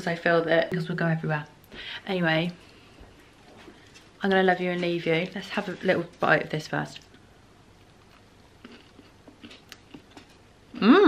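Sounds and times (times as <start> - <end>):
person chewing crunchy biscuit: 8.0 - 10.9.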